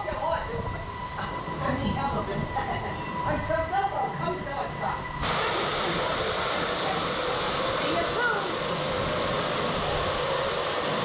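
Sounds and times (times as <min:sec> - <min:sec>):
rushing wind noise: 0:00.0 - 0:11.0.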